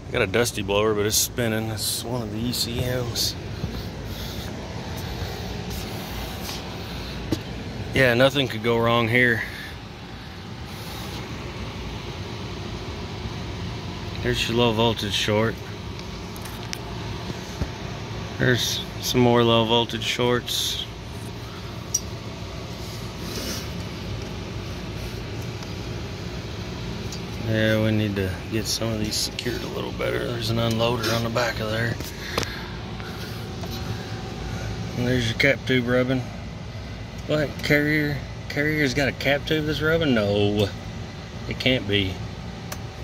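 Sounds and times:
air-conditioning equipment humming: 0:00.0 - 0:43.0.

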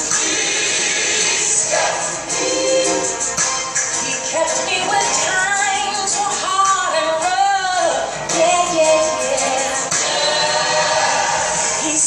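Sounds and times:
choir backing vocals: 0:00.0 - 0:03.5, 0:08.3 - 0:12.0
woman singing lead: 0:04.0 - 0:12.0.

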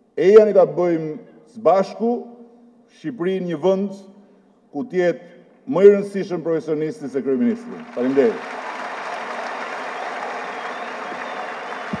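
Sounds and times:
man speaking: 0:00.2 - 0:02.2, 0:02.9 - 0:04.1, 0:04.8 - 0:08.4
audience applauding: 0:07.5 - 0:12.0.

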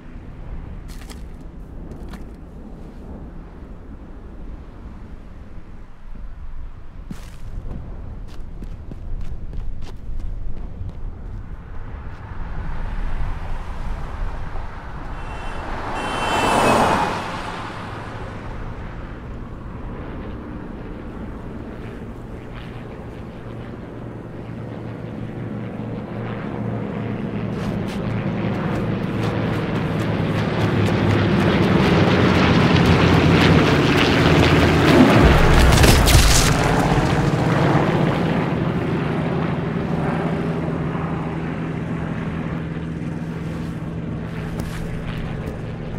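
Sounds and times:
propeller plane engine passing: 0:09.4 - 0:45.9.

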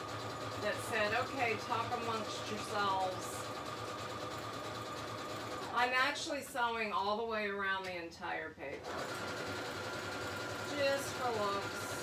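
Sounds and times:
electric sewing machine stitching: 0:00.0 - 0:06.0, 0:08.8 - 0:12.0
woman speaking: 0:00.6 - 0:03.5, 0:05.7 - 0:08.8, 0:10.7 - 0:12.0.

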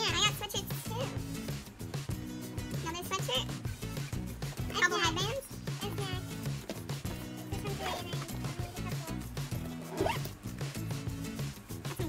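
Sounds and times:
music with repeating bass line: 0:00.0 - 0:12.0
zipper being pulled: 0:09.5 - 0:10.4.

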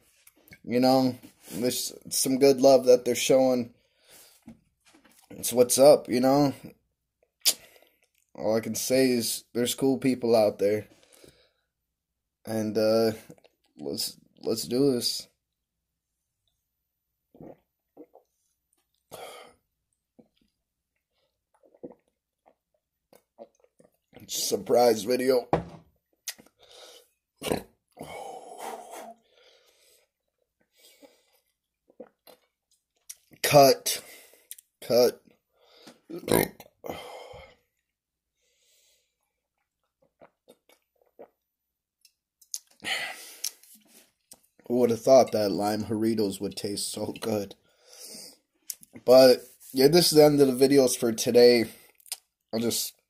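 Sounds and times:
quiet gulps: 0:17.2 - 0:24.4, 0:27.4 - 0:33.4
man swallowing: 0:17.3 - 0:18.4, 0:21.5 - 0:22.6, 0:27.4 - 0:29.2, 0:35.9 - 0:37.3
breath out: 0:42.8 - 0:44.1.

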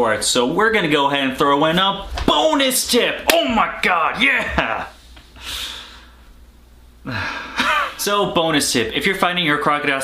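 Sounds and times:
man's stifled laugh: 0:07.1 - 0:08.0.

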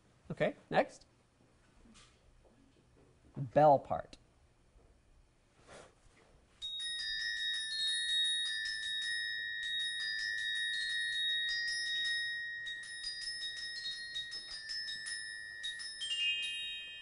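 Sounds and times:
glockenspiel notes ringing: 0:06.6 - 0:17.0.

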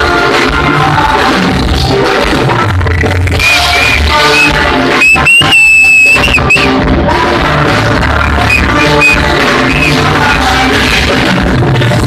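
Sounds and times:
live band playing loudly: 0:00.1 - 0:12.0
held high note: 0:04.2 - 0:06.7, 0:08.4 - 0:10.4.

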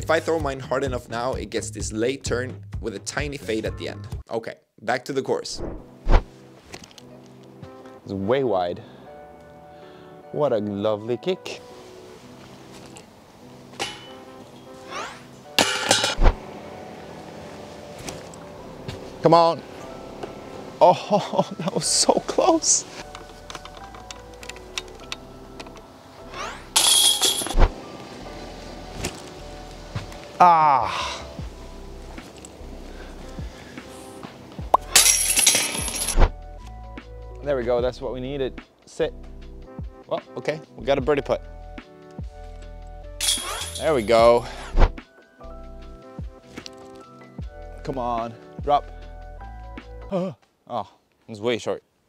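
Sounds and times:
background music with held tones: 0:00.0 - 0:04.3, 0:05.3 - 0:50.3
disc hitting metal chains: 0:13.8 - 0:14.2, 0:15.6 - 0:16.2, 0:26.8 - 0:27.7, 0:34.8 - 0:36.2, 0:43.2 - 0:44.2.

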